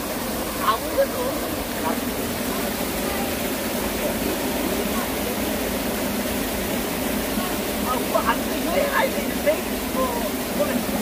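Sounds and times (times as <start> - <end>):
stream flowing over rocks: 0.0 - 11.0.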